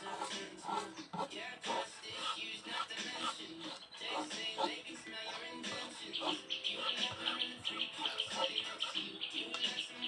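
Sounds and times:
background music with voice: 0.0s - 10.0s.

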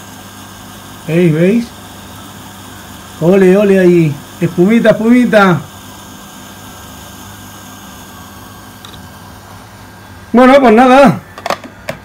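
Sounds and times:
pump humming: 0.0s - 12.0s.

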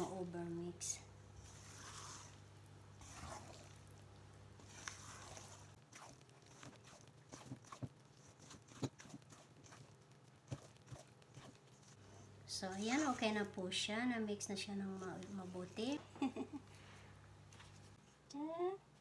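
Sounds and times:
spatula folding batter: 1.4s - 13.6s.

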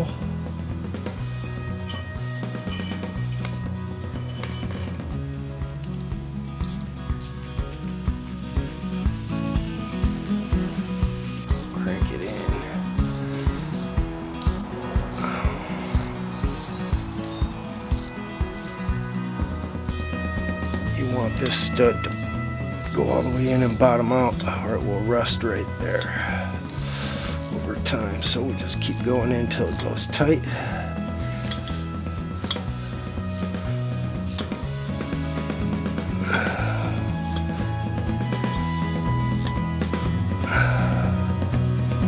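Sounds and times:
background music: 0.0s - 42.0s
metal clinks of wrenches: 1.8s - 18.8s, 19.9s - 24.5s, 26.7s - 30.0s, 31.4s - 31.8s, 32.4s - 32.6s, 33.3s - 33.6s, 34.2s - 34.5s, 37.2s - 37.5s, 38.3s - 38.6s, 39.3s - 39.6s
ratchet clicking: 6.6s - 18.8s, 19.9s - 24.5s, 26.7s - 27.6s, 31.4s - 31.7s, 32.4s - 32.6s, 33.3s - 33.6s, 34.2s - 34.6s, 35.2s - 35.5s, 37.2s - 37.5s, 38.3s - 38.6s, 39.3s - 39.6s.

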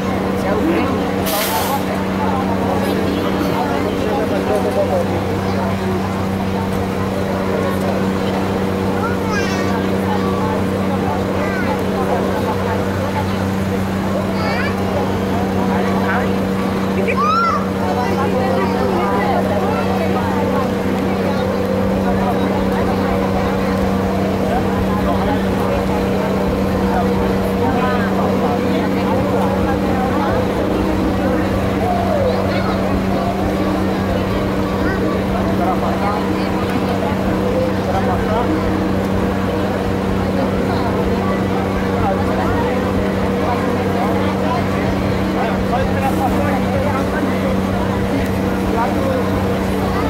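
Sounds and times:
crowd chatter: 0.0s - 50.0s
low engine hum: 0.0s - 50.0s.

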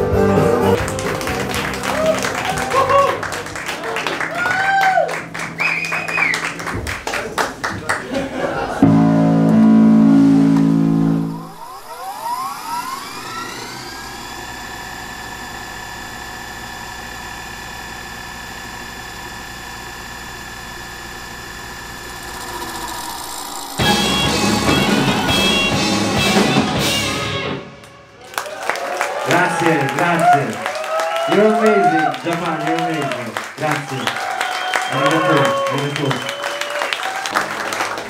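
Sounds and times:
live rock band: 0.0s - 4.2s, 23.8s - 27.9s
tape fast-forward high drone: 8.8s - 28.1s.

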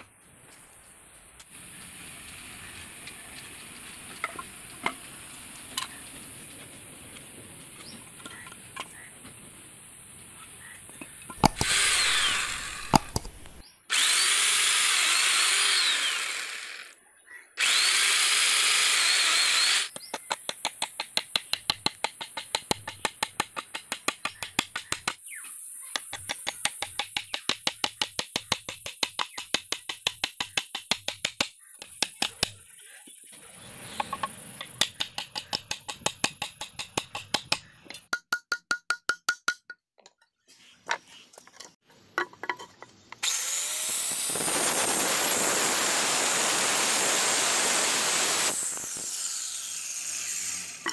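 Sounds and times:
hammer striking nails into wood: 11.4s - 11.8s
power tool running: 11.4s - 17.0s, 17.6s - 19.9s, 43.2s - 50.9s.

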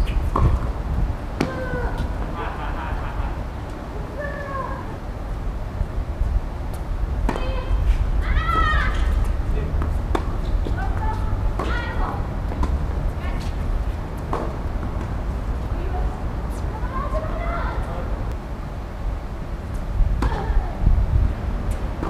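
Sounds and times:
steady low rumble: 0.0s - 22.0s
racket hitting tennis ball: 1.4s - 2.1s, 7.2s - 12.8s.

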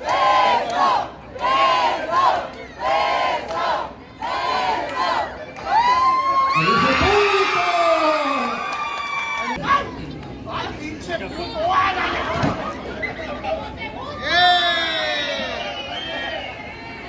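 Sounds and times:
crowd chanting in rhythm: 0.0s - 5.4s.

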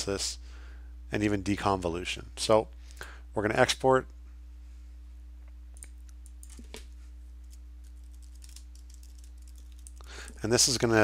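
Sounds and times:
low electrical hum: 0.0s - 11.0s
keyboard typing: 5.8s - 6.8s, 7.4s - 10.1s.

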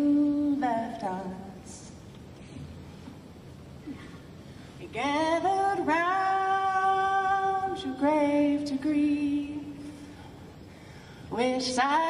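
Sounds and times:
woman singing unaccompanied: 0.0s - 1.9s, 4.8s - 10.0s, 11.3s - 12.0s.

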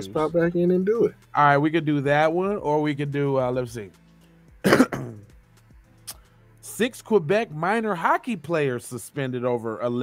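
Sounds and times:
man clearing throat: 4.6s - 5.3s.

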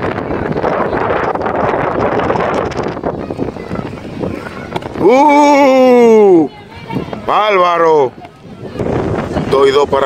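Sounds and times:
faint background voices: 0.0s - 10.0s
wind buffeting microphone: 0.0s - 10.0s.

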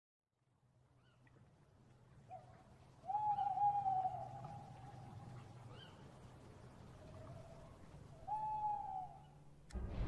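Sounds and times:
long hooting call: 2.3s - 9.4s.

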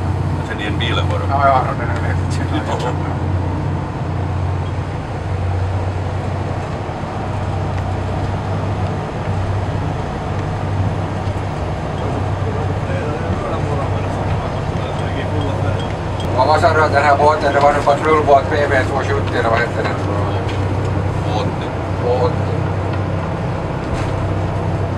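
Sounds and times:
boat diesel engines droning: 0.0s - 24.9s
water rushing against hull: 0.0s - 24.9s.

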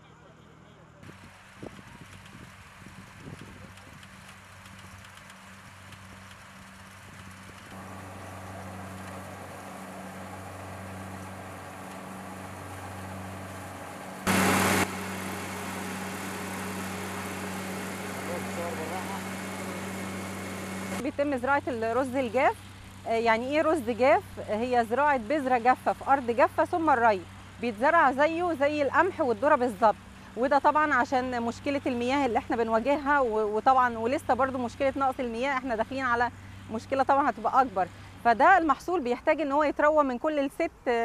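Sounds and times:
combine harvester engine running: 1.0s - 38.4s
loud burst of noise: 13.2s - 21.0s.

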